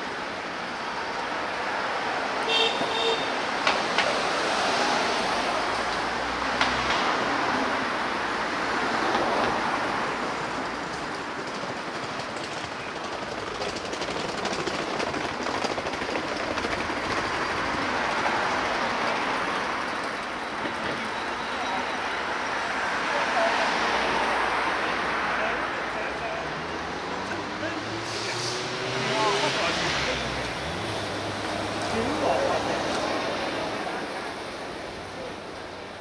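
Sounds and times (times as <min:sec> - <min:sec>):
cars and scooters passing: 0:00.0 - 0:36.0
traffic background hum: 0:00.0 - 0:36.0.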